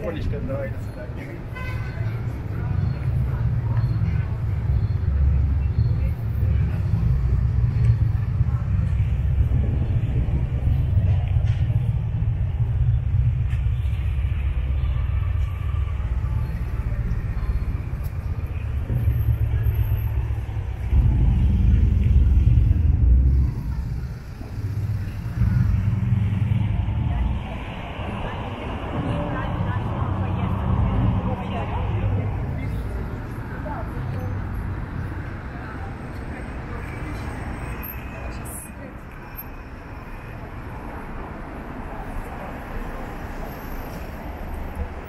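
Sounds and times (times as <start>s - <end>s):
cars passing: 0.0s - 45.0s
low rumble of road traffic: 0.0s - 45.0s
passers-by talking: 0.0s - 45.0s.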